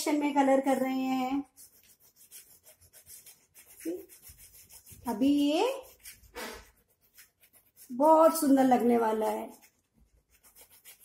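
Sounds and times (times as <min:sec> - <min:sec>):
chalk rubbing on blackboard: 0:00.0 - 0:11.0.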